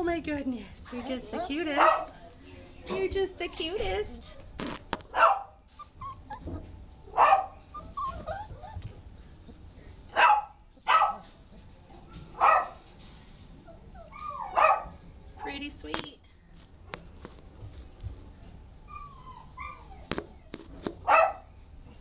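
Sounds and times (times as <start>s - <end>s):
dogs barking: 1.0s - 2.2s, 5.1s - 5.6s, 7.1s - 7.8s, 10.1s - 11.4s, 12.3s - 12.8s, 14.1s - 15.0s, 21.0s - 21.5s.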